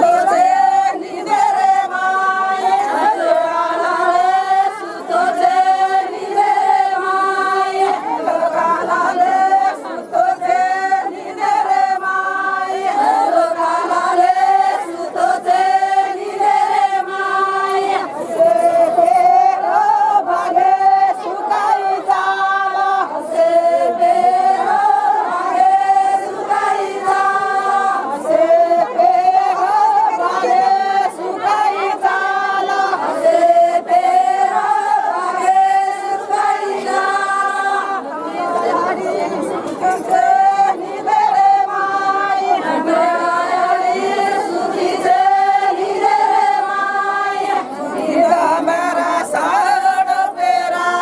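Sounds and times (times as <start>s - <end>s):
women singing folk song: 0.0s - 51.0s.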